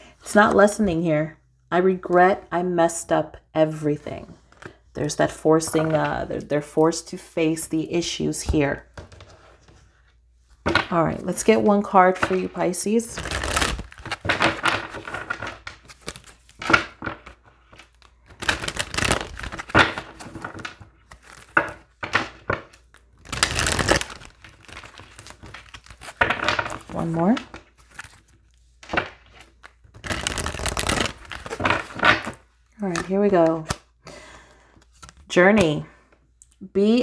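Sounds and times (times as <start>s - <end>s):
cards shuffled by hand: 13.2s - 33.8s, 34.8s - 35.3s.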